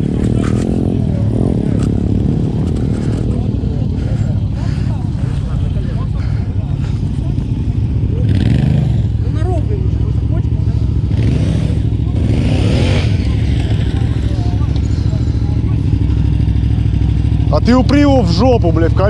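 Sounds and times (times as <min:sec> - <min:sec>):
motorcycle engines revving: 0:00.0 - 0:19.0.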